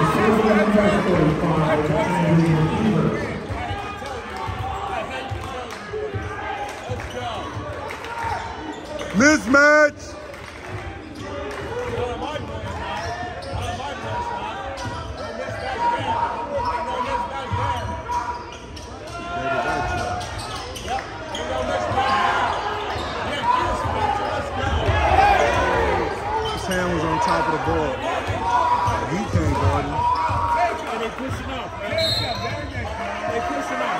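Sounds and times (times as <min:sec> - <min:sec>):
spectators shouting in echoing hall: 0:00.0 - 0:33.9.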